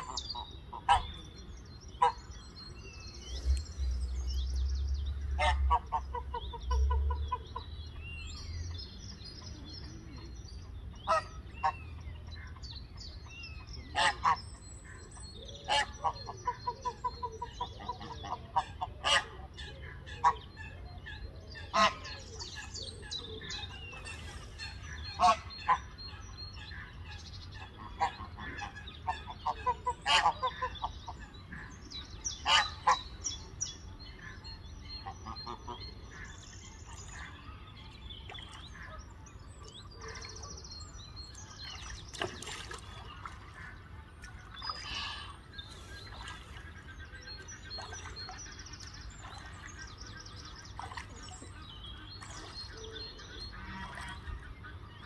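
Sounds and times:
small birds chirping: 0.0s - 55.0s
geese honking: 21.7s - 22.1s, 23.4s - 26.0s.

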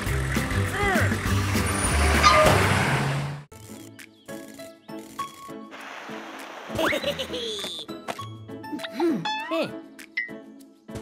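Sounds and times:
cartoon car engine speeding off: 0.0s - 3.4s
background music: 0.0s - 11.0s.

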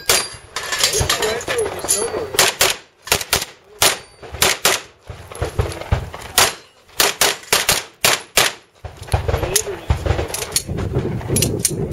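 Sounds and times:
pistol shots with echo: 2.3s - 10.6s.

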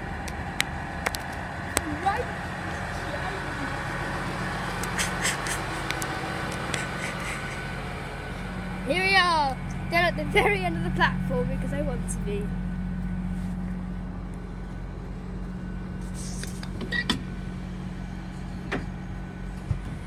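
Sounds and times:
diesel train engines idling: 0.0s - 20.0s.

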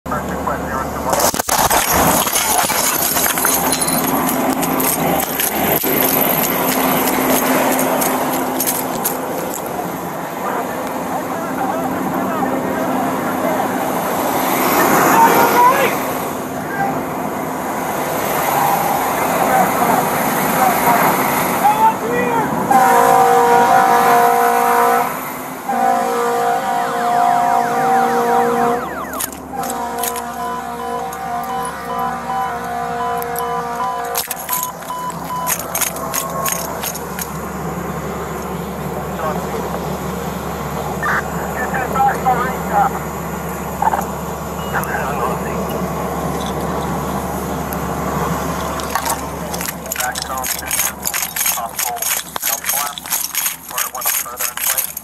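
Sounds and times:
fire burning: 1.0s - 10.2s
house exploding: 1.1s - 9.6s
debris falling: 1.1s - 9.8s, 28.9s - 31.8s, 34.0s - 37.4s, 48.6s - 55.0s
two-pitch alarm tone: 28.6s - 35.5s.

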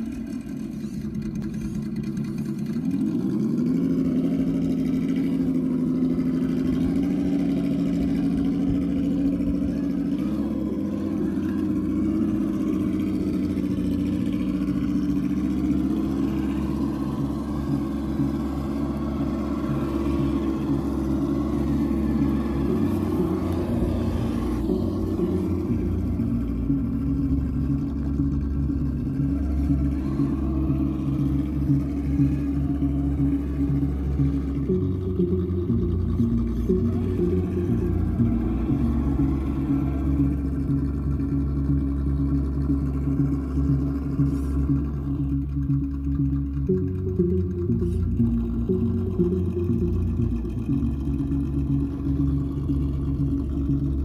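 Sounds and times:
simulated engine sound: 0.0s - 54.0s.

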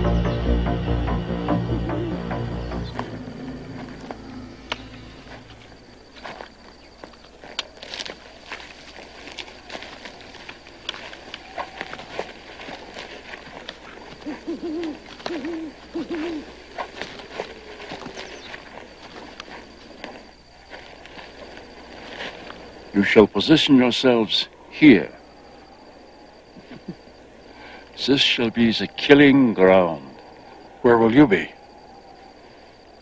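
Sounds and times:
owl hooting: 0.0s - 33.0s
footsteps in undergrowth: 2.6s - 28.5s.

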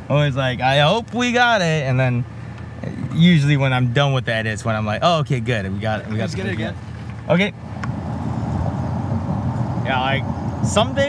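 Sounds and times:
vehicle engine and road noise: 0.0s - 11.0s.

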